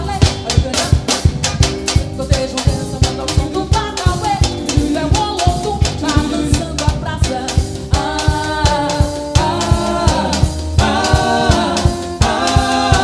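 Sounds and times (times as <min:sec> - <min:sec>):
drum kit beat: 0:00.0 - 0:13.0
melodic band instruments: 0:00.0 - 0:13.0.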